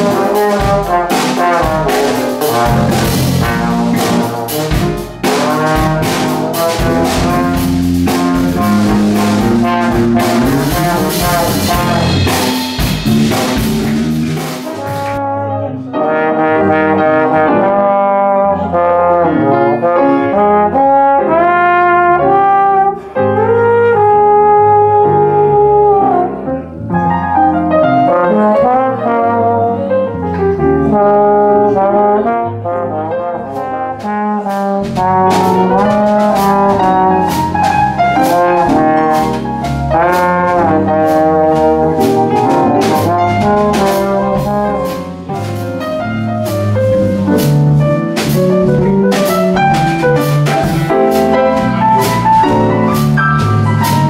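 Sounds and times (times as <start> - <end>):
drums and cymbals: 0.0 - 15.2, 34.0 - 54.0
bass guitar: 0.0 - 54.0
piano: 0.0 - 54.0
trombone playing: 0.0 - 54.0.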